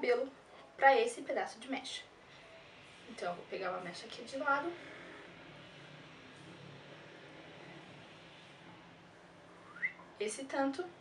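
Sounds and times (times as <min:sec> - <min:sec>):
even hiss: 0:00.0 - 0:11.0
low hum: 0:01.9 - 0:11.0.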